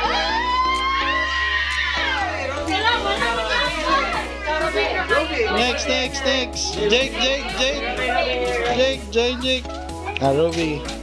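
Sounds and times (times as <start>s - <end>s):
children and adults calling out: 0.0s - 10.4s.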